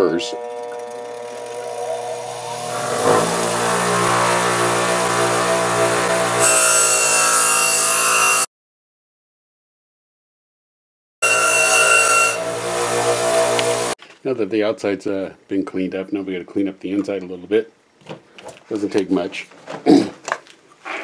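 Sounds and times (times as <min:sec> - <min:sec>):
bench grinder motor humming: 0:00.0 - 0:08.5, 0:11.2 - 0:14.0
wire wheel brushing sheet metal: 0:01.2 - 0:08.4, 0:11.2 - 0:14.0.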